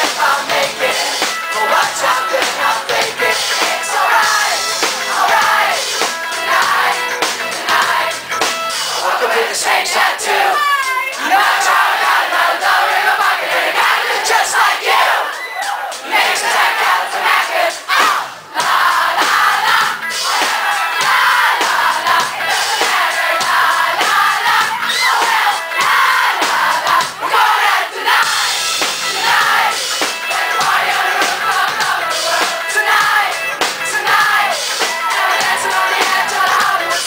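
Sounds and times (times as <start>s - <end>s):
crowd singing and shouting: 0.0s - 37.0s
live pop-rock band: 0.0s - 37.0s.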